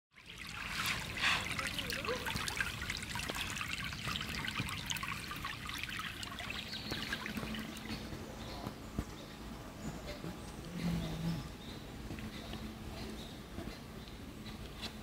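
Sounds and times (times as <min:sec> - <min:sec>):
creek water babbling: 0:00.1 - 0:08.6.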